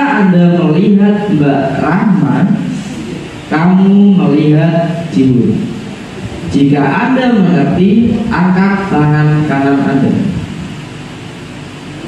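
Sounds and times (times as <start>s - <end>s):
man's voice: 0.0s - 5.8s, 6.4s - 10.4s
room noise hiss: 0.0s - 12.0s.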